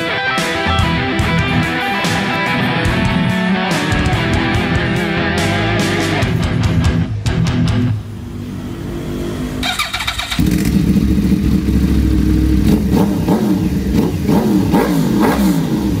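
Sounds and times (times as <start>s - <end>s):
motorcycle engine revving: 0.4s - 16.0s.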